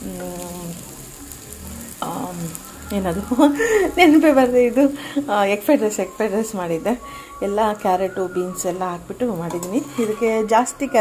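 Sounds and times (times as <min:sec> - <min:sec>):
rice sizzling in a pan: 0:00.0 - 0:11.0.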